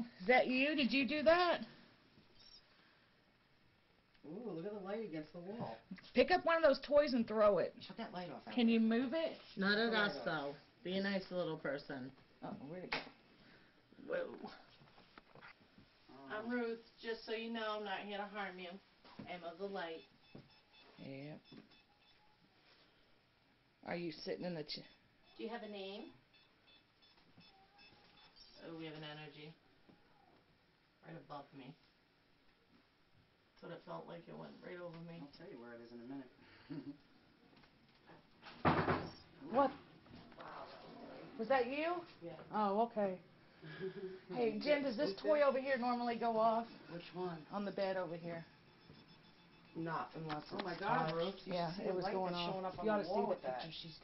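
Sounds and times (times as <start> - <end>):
high electronic beeps: 24.8 - 28.6, 46.9 - 50.8
faint high-pitched squeak: 27.0 - 28.7.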